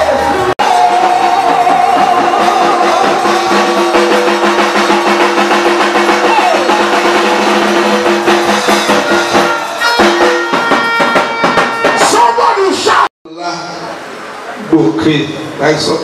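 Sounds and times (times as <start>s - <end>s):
drum kit steady beat: 0.0s - 12.8s
live praise music: 0.0s - 13.9s.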